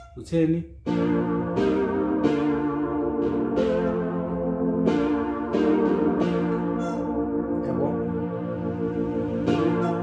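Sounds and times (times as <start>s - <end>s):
keyboard playing sustained synth chords: 0.9s - 10.0s.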